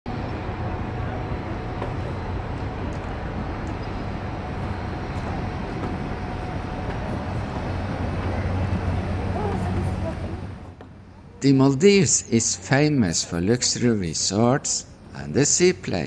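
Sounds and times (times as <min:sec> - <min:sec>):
turboprop engines low drone: 0:00.1 - 0:10.8
faint engine whine: 0:00.1 - 0:11.4.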